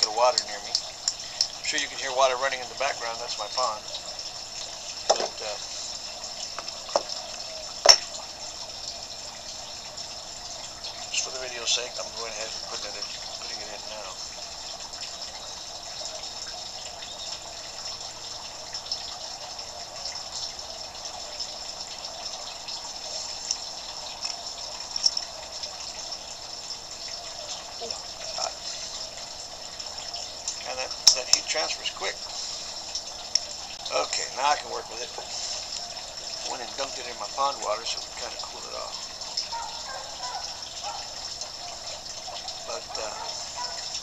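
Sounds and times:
water running in a pond: 0:00.0 - 0:44.0.

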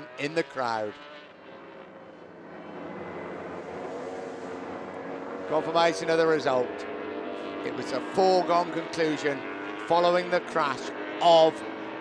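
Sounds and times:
engine drone: 0:00.0 - 0:12.0.

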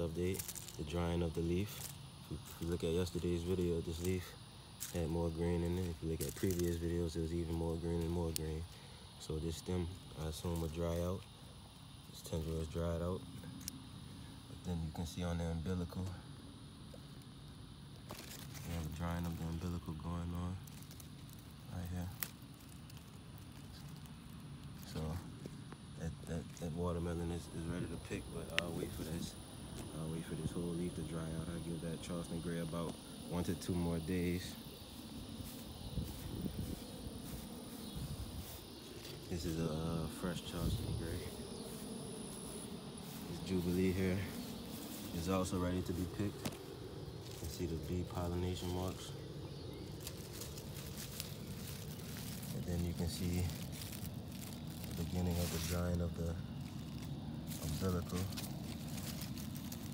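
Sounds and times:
footsteps through vines and grass: 0:00.0 - 0:11.4, 0:17.9 - 0:59.9
faint hiss: 0:00.0 - 0:59.9.

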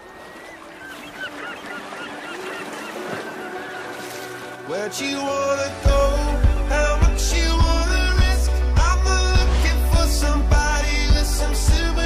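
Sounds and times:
gulls calling: 0:00.0 - 0:07.1.

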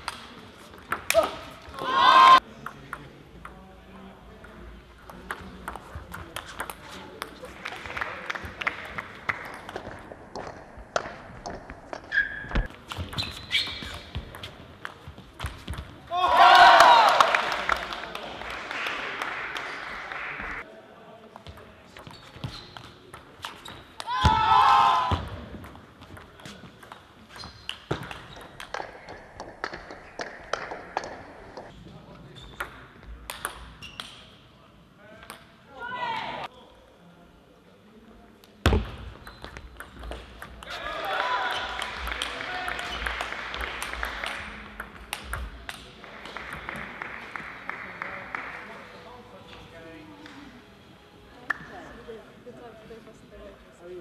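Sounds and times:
table tennis balls clicking: 0:41.8 - 0:46.8.

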